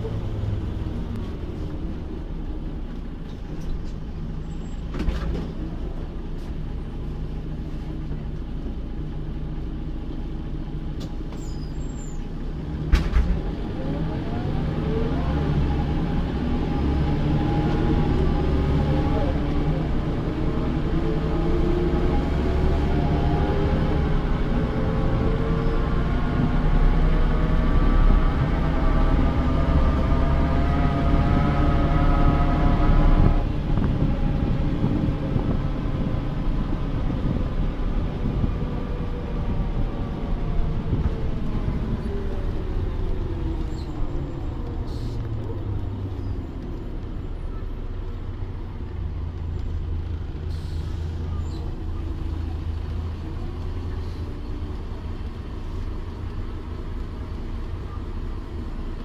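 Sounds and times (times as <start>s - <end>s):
bus engine accelerating: 0.0s - 59.0s.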